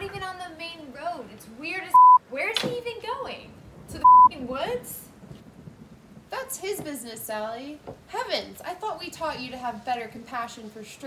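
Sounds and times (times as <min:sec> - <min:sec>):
woman speaking: 0:00.0 - 0:05.1, 0:06.3 - 0:11.0
censor bleep: 0:01.9 - 0:02.2, 0:04.0 - 0:04.3.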